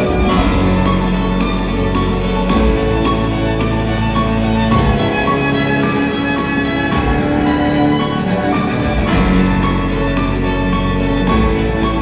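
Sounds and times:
instrumental ensemble music: 0:00.0 - 0:12.0.

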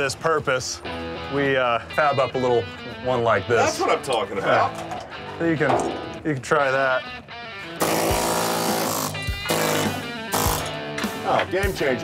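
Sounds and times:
air chisel hammering rapidly: 0:07.8 - 0:10.8.

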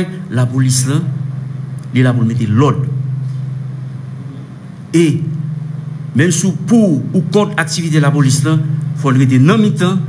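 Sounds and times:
man talking: 0:00.0 - 0:01.2, 0:01.9 - 0:03.0, 0:04.9 - 0:05.4, 0:06.2 - 0:10.0
steady low hum: 0:00.0 - 0:10.0.

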